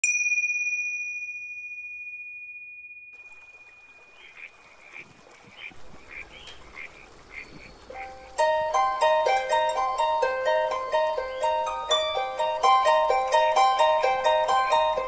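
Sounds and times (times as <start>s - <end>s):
bell-like chime ringing: 0.0s - 4.1s
soft ambient hiss: 3.2s - 15.0s.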